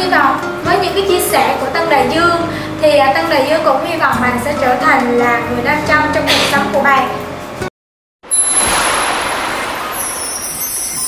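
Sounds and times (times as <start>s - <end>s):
high glittering shimmer: 8.3s - 11.0s
rushing whoosh: 8.3s - 11.0s.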